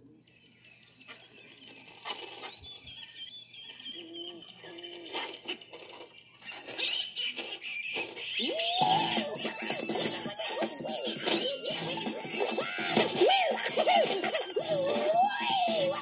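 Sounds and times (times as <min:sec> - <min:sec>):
cartoon animal sounds: 0:06.5 - 0:16.0
cartoon soundtrack music: 0:08.4 - 0:16.0.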